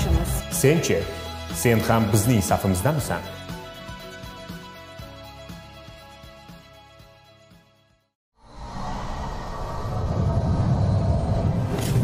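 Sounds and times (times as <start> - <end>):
deep rumbling swell: 8.4 - 12.0.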